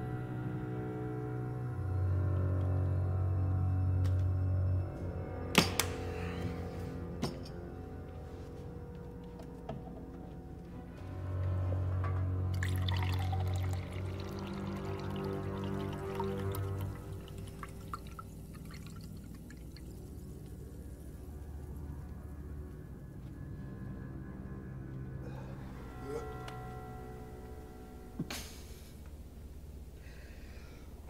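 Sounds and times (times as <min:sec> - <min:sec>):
soft musical drone: 0:00.0 - 0:31.0
faint low rumble: 0:16.6 - 0:31.0.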